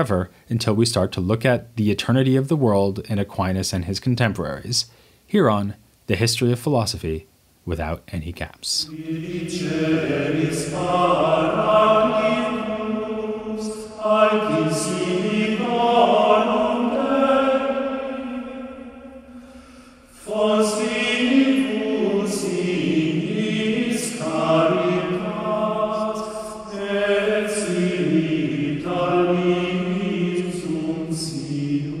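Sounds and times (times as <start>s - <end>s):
choral chant singing: 8.8s - 32.0s.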